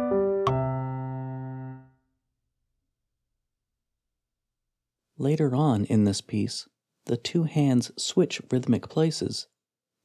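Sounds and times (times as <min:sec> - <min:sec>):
piano chord ringing: 0:00.0 - 0:02.0.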